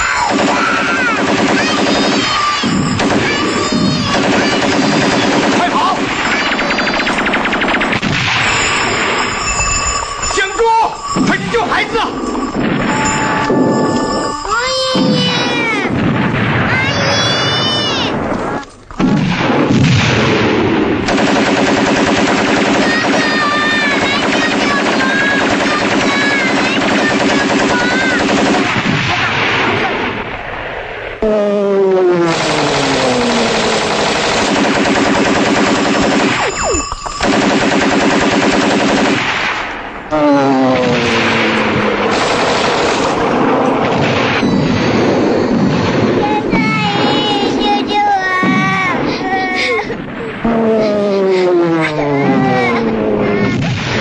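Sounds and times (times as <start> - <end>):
machine-gun and rifle fire: 0.0 - 10.3, 15.2 - 31.0, 32.0 - 49.9.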